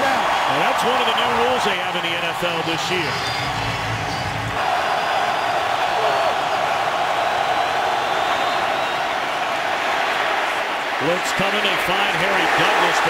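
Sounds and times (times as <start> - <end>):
stadium crowd cheering: 0.0 - 13.0.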